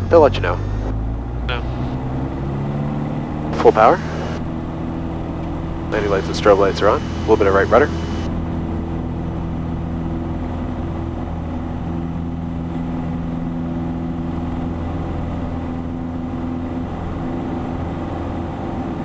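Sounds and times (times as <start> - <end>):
aircraft engine and propeller: 0.0 - 19.0.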